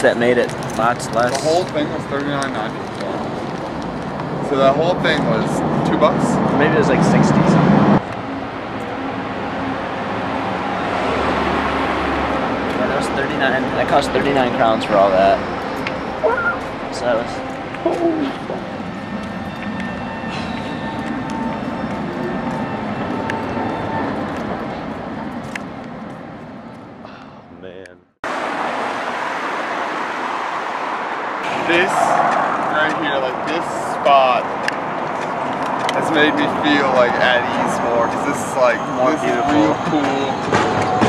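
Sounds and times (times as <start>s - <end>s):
busy road traffic: 0.0s - 41.0s.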